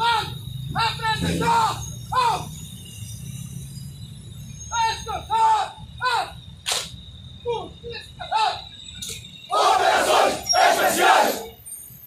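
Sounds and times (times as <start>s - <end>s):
group shouting war cries: 9.5s - 11.5s.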